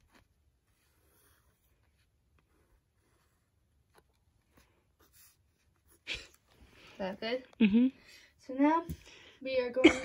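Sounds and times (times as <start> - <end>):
pencil scratching on paper: 0.0 - 6.0.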